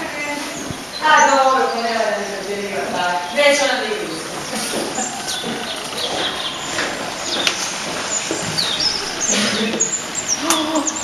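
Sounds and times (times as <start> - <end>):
small birds chirping: 0.0 - 11.0
steady outdoor hiss: 0.0 - 11.0.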